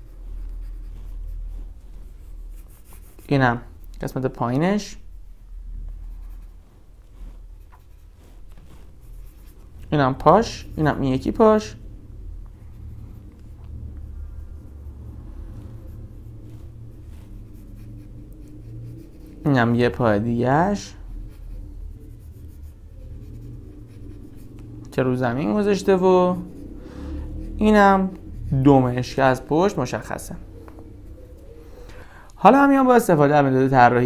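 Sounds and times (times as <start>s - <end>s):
pencil scratching on paper: 0.0s - 4.2s, 5.9s - 31.6s
low steady hum: 0.0s - 34.0s.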